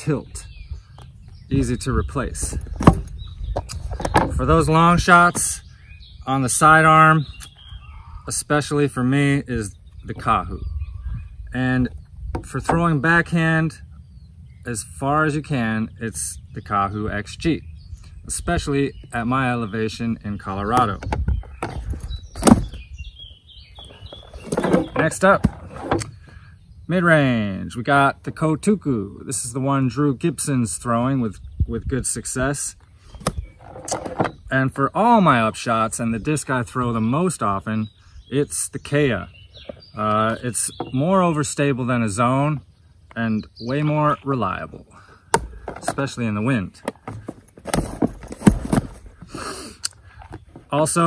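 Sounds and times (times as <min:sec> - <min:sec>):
faint high bird chirps: 0:05.5 - 0:08.3
plastic discs knocking: 0:45.3 - 0:46.0
bag rustling: 0:47.0 - 0:49.3.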